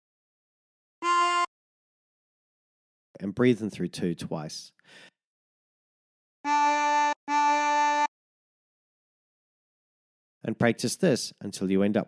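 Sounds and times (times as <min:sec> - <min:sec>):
harmonica draw notes: 0:01.0 - 0:01.5, 0:06.5 - 0:08.1.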